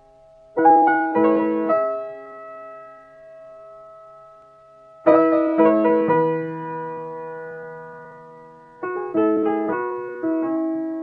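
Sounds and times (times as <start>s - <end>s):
sustained piano chord: 0.0s - 11.0s.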